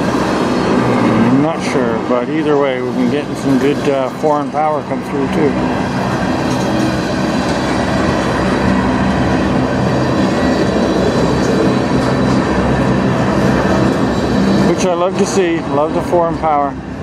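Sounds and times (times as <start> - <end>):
steel train wheels on rails: 0.0 - 17.0.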